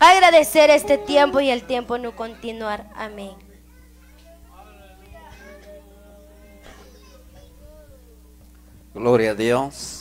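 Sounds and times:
sound system hum: 0.0s - 9.0s
faint high-pitched voices: 0.7s - 8.6s.

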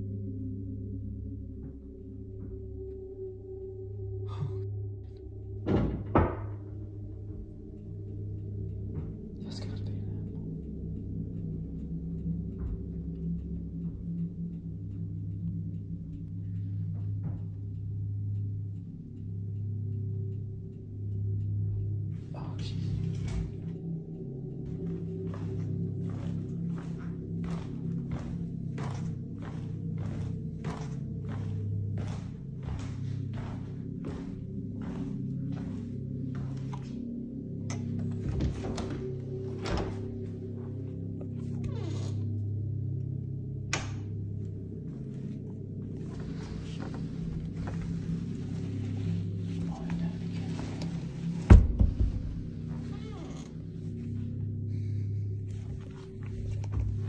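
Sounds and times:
low droning music: 0.0s - 57.0s
regular ticking: 6.7s - 41.6s.

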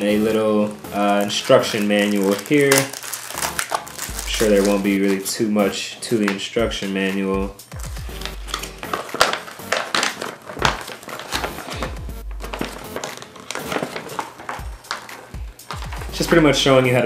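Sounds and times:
paper rustling and crinkling: 0.0s - 5.4s, 7.8s - 16.5s
background music: 0.0s - 17.0s.

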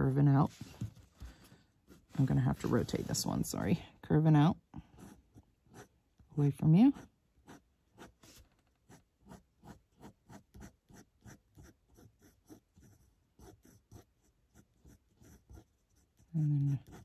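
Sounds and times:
pen scratching on paper: 4.8s - 6.0s, 6.9s - 17.0s.

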